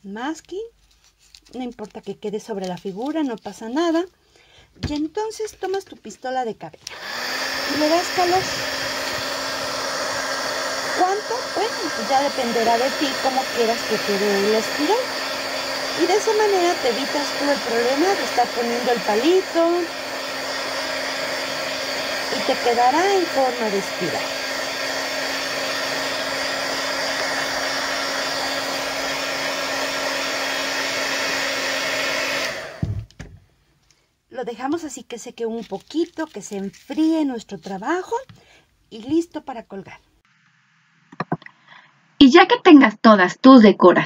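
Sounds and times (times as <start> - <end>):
hair dryer blowing: 6.8 - 33.2.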